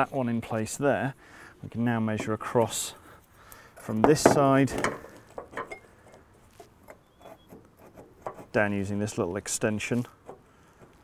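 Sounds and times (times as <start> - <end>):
tool rubbing on metal frame: 5.6 - 8.8.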